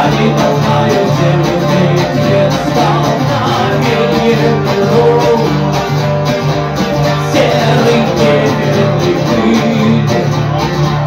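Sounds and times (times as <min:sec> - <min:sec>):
man singing: 0:00.0 - 0:05.9, 0:07.0 - 0:11.0
acoustic guitar strumming: 0:00.0 - 0:11.0.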